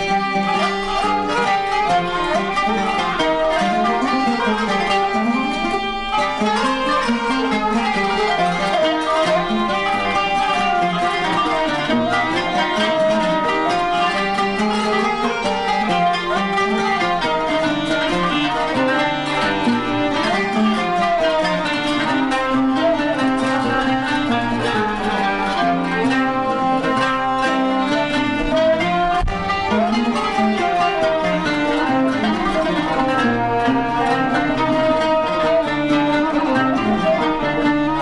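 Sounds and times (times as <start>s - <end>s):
bowed and plucked strings ensemble: 0.0s - 38.0s.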